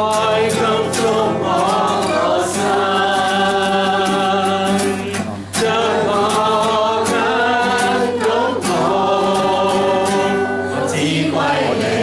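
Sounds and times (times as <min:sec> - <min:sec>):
acoustic guitar strumming: 0:00.0 - 0:12.0
man singing worship song: 0:00.0 - 0:12.0.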